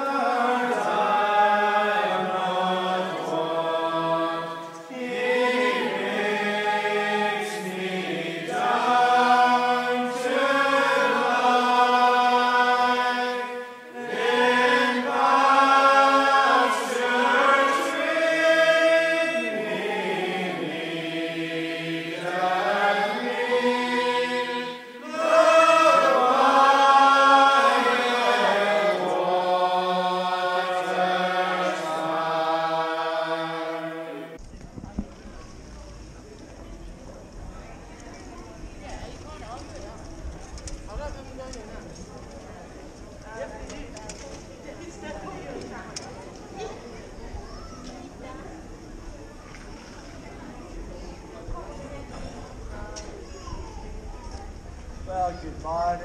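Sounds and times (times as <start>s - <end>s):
chant-like singing voices: 0.0s - 34.4s.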